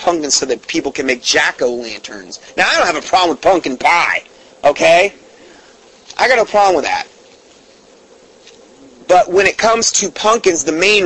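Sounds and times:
background hum and hiss: 0.0 - 11.0
thin buzzing tone: 0.0 - 11.0.

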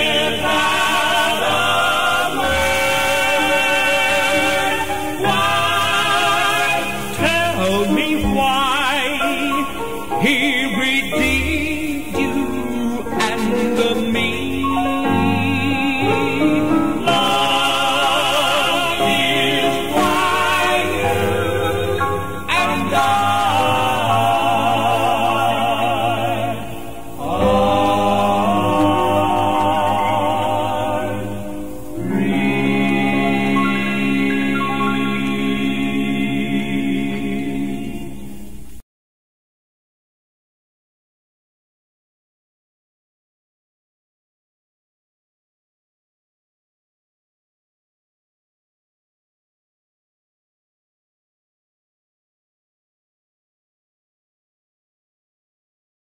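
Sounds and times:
male vocal quartet harmonizing: 0.0 - 38.5.

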